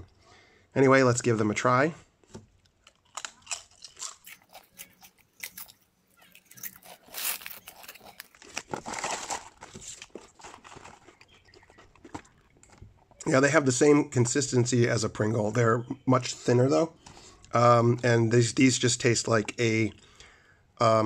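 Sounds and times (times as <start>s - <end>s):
person crunching potato chips: 2.5s - 12.7s
cardboard box and foil bag rustling: 3.8s - 12.9s.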